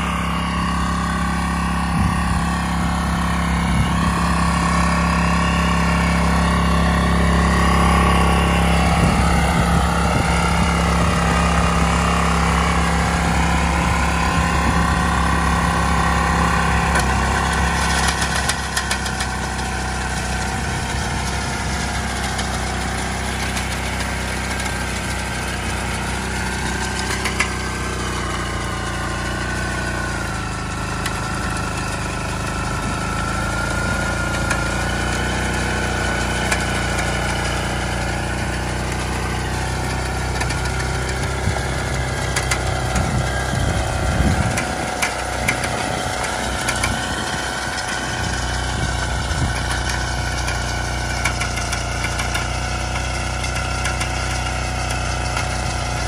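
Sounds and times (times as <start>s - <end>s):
tiller engine running: 0.0s - 56.0s
low rumble: 1.7s - 17.0s.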